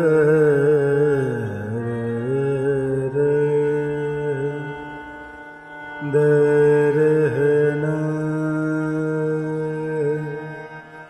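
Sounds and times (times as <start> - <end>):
man singing wordlessly: 0.0 - 5.0, 6.0 - 10.9
harmonium sustained notes: 0.0 - 11.0.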